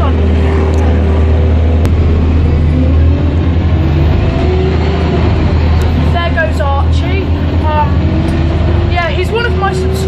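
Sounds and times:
bus engine drone: 0.0 - 10.0
rising engine whine: 0.0 - 10.0.

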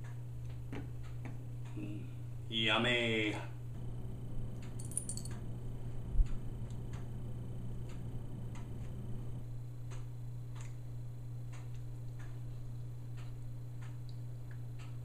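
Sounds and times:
low hum: 0.0 - 15.0
clock ticking: 9.8 - 10.7.

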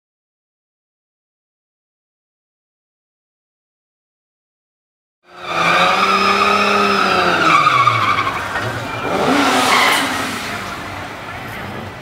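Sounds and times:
tyres screeching: 5.3 - 11.0
car engine revving: 5.3 - 12.0.

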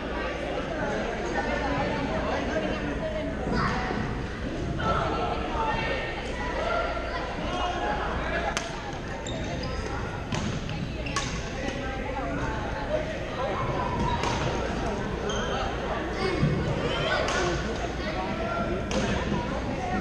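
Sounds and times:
chatter of many players: 0.0 - 20.0
shoes squeaking on court floor: 8.9 - 11.5, 14.0 - 15.9.

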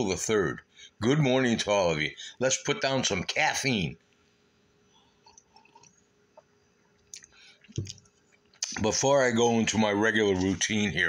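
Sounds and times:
person sipping and swallowing: 5.3 - 6.0, 7.1 - 8.0.

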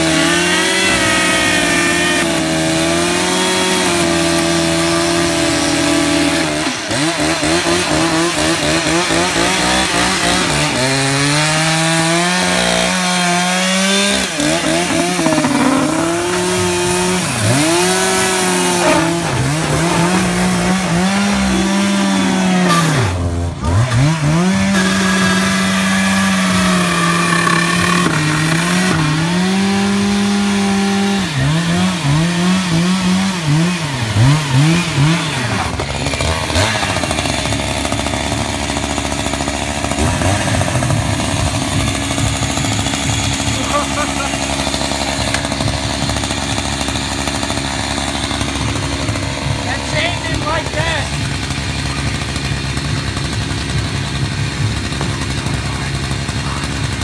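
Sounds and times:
chainsaw cutting: 0.0 - 57.0.

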